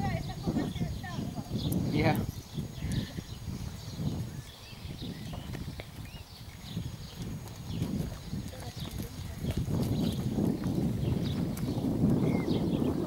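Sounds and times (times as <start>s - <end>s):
horse hoofbeats on sand: 0.0s - 13.0s.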